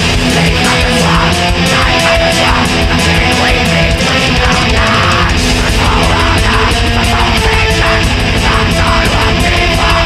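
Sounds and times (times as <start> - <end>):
distorted electric guitars: 0.0 - 10.0
fast drumming: 0.0 - 10.0.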